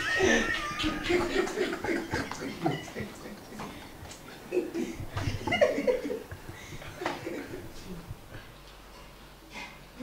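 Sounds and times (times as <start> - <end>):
person squealing laugh: 0.0 - 2.9
people laughing: 0.0 - 8.1.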